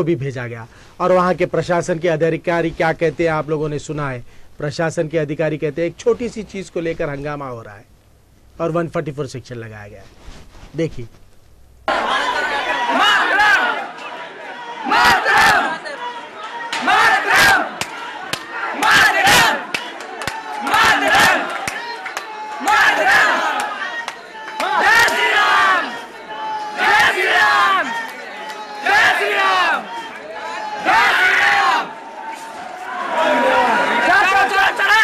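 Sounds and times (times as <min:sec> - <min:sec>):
crowd of men chanting: 0:11.9 - 0:35.0.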